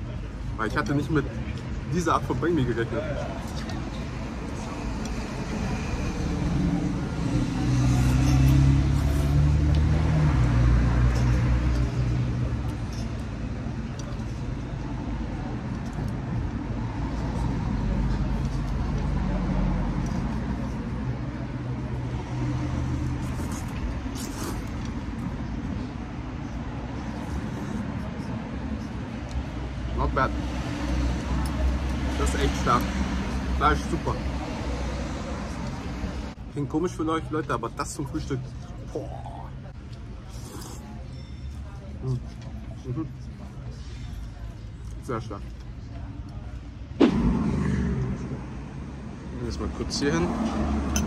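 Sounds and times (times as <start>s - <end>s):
traffic noise: 0.0s - 51.0s
vehicle engine rumble: 41.4s - 51.0s.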